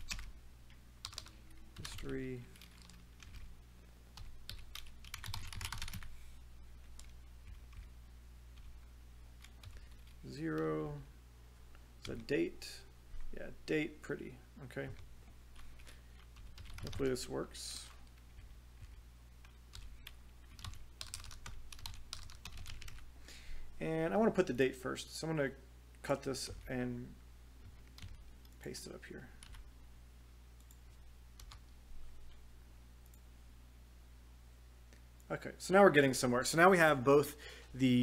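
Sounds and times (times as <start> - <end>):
typing on computer keyboard: 0.0 - 0.3, 1.0 - 3.5, 4.2 - 6.1, 9.4 - 10.2, 15.6 - 17.1, 19.7 - 23.0, 27.9 - 28.6
low steady hum: 0.0 - 38.0.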